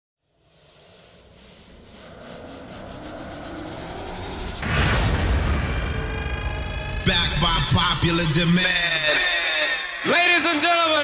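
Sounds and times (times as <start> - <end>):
low rumbling riser: 0.2 - 9.0.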